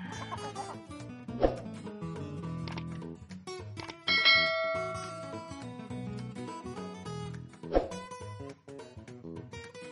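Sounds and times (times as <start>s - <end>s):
background music: 0.0s - 9.9s
bell ding: 4.1s - 5.6s.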